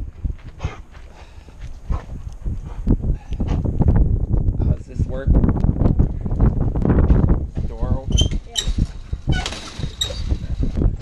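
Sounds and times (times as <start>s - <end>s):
chain-link gate clinking and rattling: 8.2s - 10.6s.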